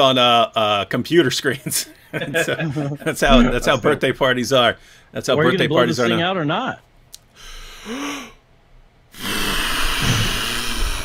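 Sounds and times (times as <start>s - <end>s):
person blowing hard: 7.4s - 8.4s, 9.1s - 11.0s.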